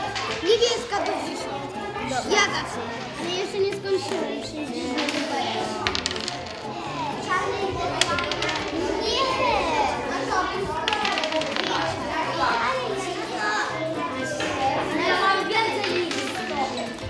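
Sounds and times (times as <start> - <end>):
children talking and calling out: 0.0 - 17.0
soft background music: 0.0 - 17.0.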